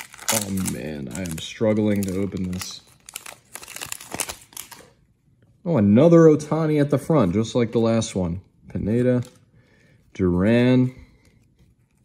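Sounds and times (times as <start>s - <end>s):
wrapper crinkling and tearing: 0.0s - 5.0s.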